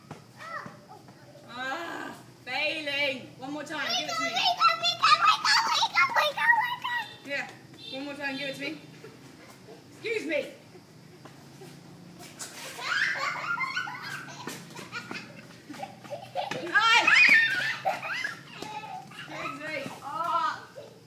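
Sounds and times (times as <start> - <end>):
toddler laughing and squealing: 12.4 - 21.0
woman laughing: 12.9 - 19.8.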